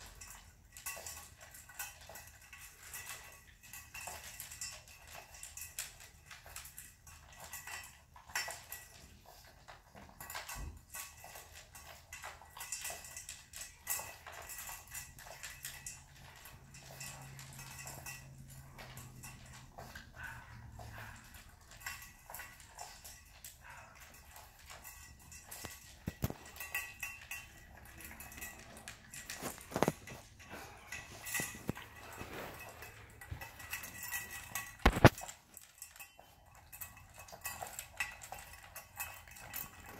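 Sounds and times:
dog eating from metal bowl: 0:00.0 - 0:39.9.

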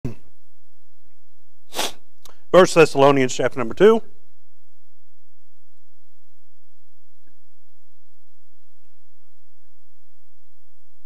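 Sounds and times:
man's sharp intake of breath: 0:01.7 - 0:02.5.

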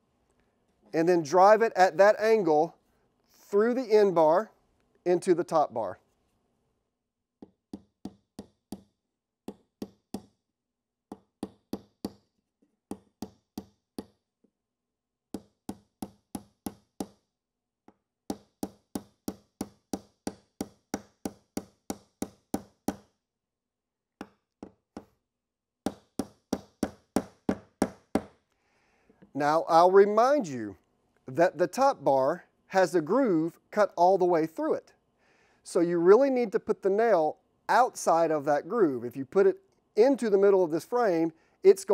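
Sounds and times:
hammer tapping small nail into wood: 0:07.4 - 0:10.4, 0:11.1 - 0:12.3, 0:12.9 - 0:14.2, 0:15.3 - 0:17.2, 0:17.9 - 0:23.2, 0:24.2 - 0:25.2, 0:25.8 - 0:28.4.

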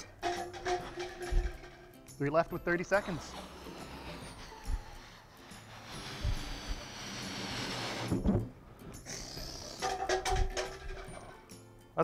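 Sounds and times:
background music: 0:00.0 - 0:12.0
air hissing through balloon: 0:03.0 - 0:10.1.

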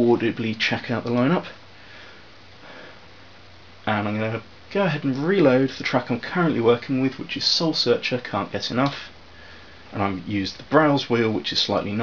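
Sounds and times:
person speaking: 0:00.0 - 0:01.6, 0:03.8 - 0:09.2, 0:09.9 - 0:12.0
low steady hiss: 0:00.0 - 0:12.0.

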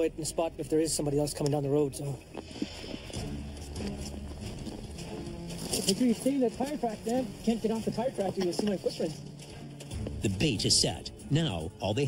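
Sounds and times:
low sustained music: 0:00.0 - 0:12.0
footsteps in snow: 0:01.9 - 0:10.6.

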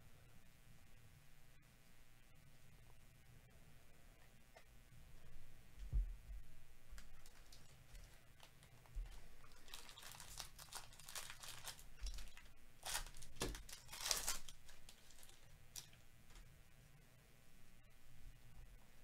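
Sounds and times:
card pack wrapper crinkling and tearing: 0:07.1 - 0:16.0.

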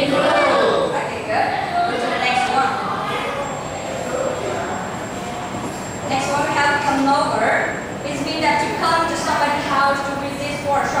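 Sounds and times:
faint murmuring voices: 0:00.0 - 0:06.2
high steady whine: 0:00.0 - 0:11.0.

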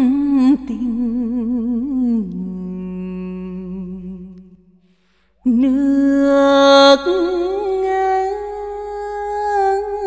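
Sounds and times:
woman singing folk song: 0:00.0 - 0:04.5, 0:05.4 - 0:10.0.

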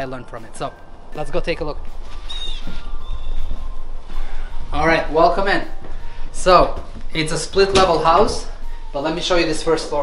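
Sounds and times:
wind rumble: 0:00.2 - 0:09.9.

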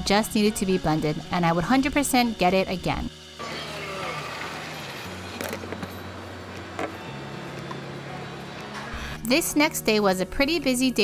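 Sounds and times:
blender low steady hum: 0:00.0 - 0:09.4
soft background music: 0:00.0 - 0:11.0.

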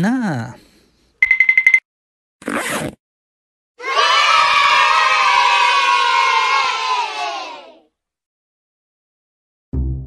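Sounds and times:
crowd shouting and cheering: 0:03.8 - 0:07.8.

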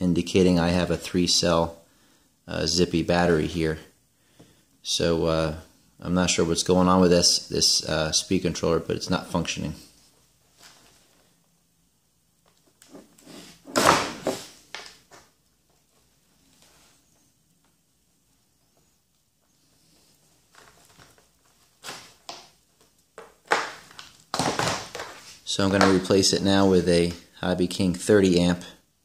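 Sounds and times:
knocks and clatter of connectors: 0:22.2 - 0:26.1.

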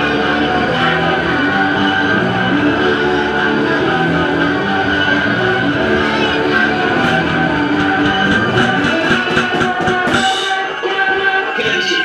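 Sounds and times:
distorted noise wall: 0:00.0 - 0:12.0
rapid drum kit hits: 0:06.9 - 0:10.6.

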